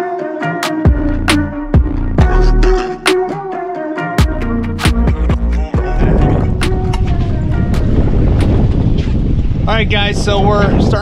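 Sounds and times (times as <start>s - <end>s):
background music with steady beat: 0.0s - 8.6s
wind noise: 5.8s - 11.0s.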